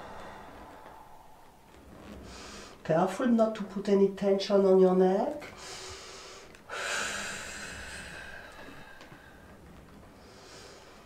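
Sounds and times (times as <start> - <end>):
long breathy exhale: 0.0 - 2.8, 5.6 - 9.6.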